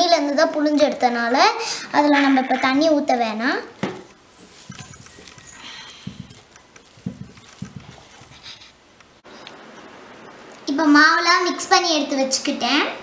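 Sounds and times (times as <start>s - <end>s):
faint steady hiss: 0.0s - 13.0s
hand mixing in steel bowl: 4.0s - 8.9s.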